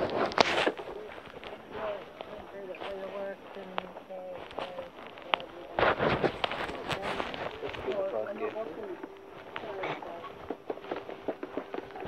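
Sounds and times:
footsteps: 0:00.0 - 0:12.0
indistinct voices: 0:00.0 - 0:12.0
phone microphone handling noise: 0:00.0 - 0:12.0.

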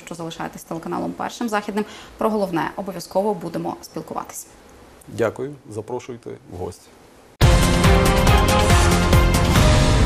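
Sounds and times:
theme music with percussive hits: 0:07.4 - 0:10.0.

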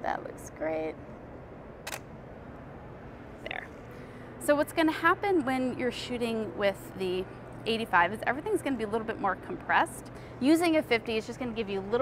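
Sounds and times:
camera shutter click: 0:01.8 - 0:02.1.

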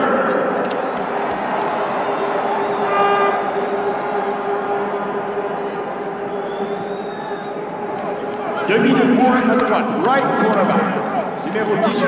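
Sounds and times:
stadium crowd cheering: 0:00.0 - 0:12.0
horn blasts: 0:02.6 - 0:11.0.

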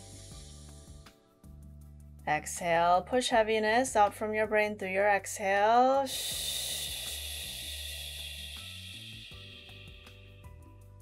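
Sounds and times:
soft background music: 0:00.0 - 0:11.0
woman exhaling slowly: 0:06.1 - 0:10.4.

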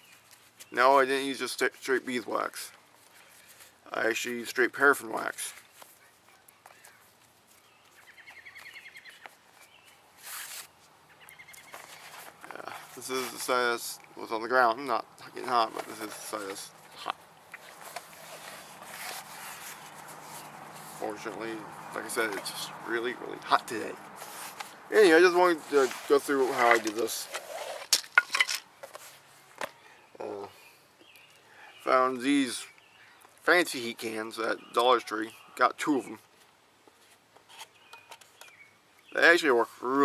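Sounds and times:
stiff cloth rustling: 0:15.4 - 0:22.8, 0:23.7 - 0:27.9.

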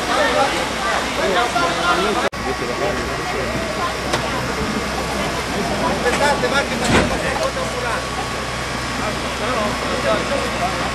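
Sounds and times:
steady engine hum: 0:00.0 - 0:10.9
voices talking: 0:00.0 - 0:10.9.

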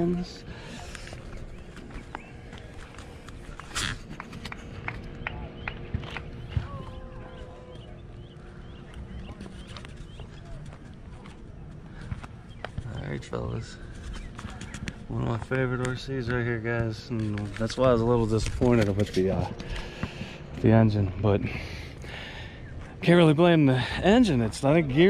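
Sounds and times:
faint steady hum: 0:00.0 - 0:25.0
light footsteps on asphalt: 0:00.6 - 0:20.8.

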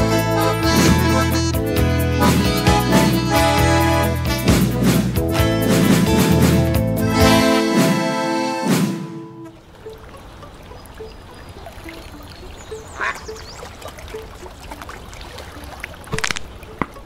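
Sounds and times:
ducks quacking: 0:00.0 - 0:17.0.

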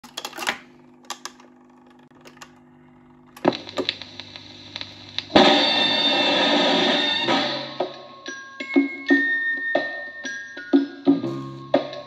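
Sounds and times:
record player hum: 0:00.0 - 0:07.0
vinyl crackle and hiss: 0:03.3 - 0:07.3.

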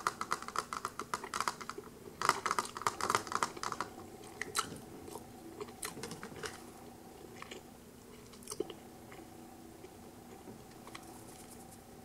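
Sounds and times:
wet chewing mouth sounds: 0:03.6 - 0:11.1.

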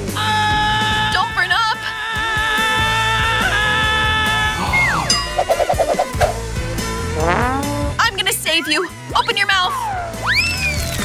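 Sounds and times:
background music: 0:00.0 - 0:11.0
boing-like wobble: 0:07.2 - 0:08.0.

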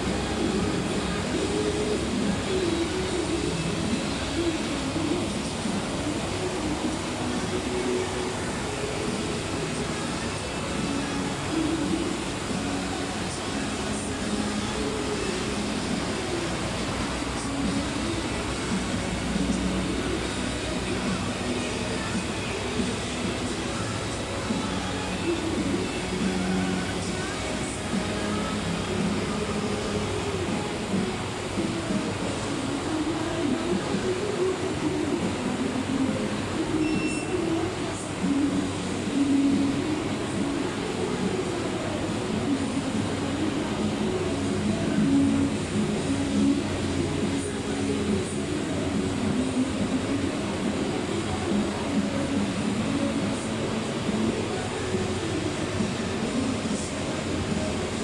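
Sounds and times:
music playing: 0:00.0 - 0:58.0.

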